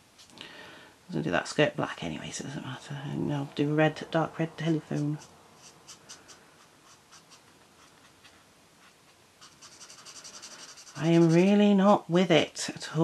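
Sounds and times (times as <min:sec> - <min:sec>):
marker scribbling on paper: 0:04.9 - 0:11.6.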